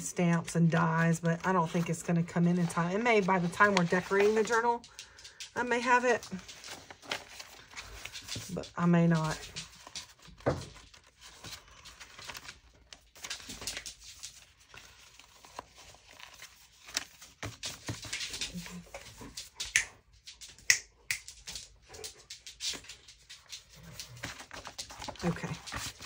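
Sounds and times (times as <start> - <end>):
crisp paper crackle: 0.3 - 19.6, 21.4 - 26.0
paper rustling and sliding: 1.3 - 4.7, 6.4 - 19.2, 22.7 - 26.0.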